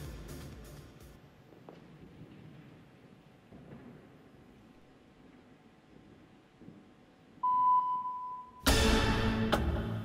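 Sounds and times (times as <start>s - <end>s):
steady electronic beep: 7.4s - 8.7s.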